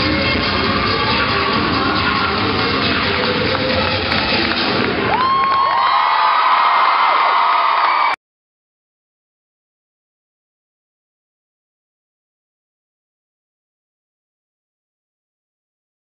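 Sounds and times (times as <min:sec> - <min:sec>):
crowd screaming and cheering: 0:00.0 - 0:08.2
loud cheer routine music: 0:00.0 - 0:08.2.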